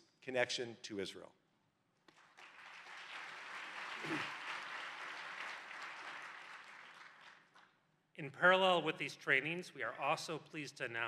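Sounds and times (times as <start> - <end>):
audience applauding: 2.1 - 7.6.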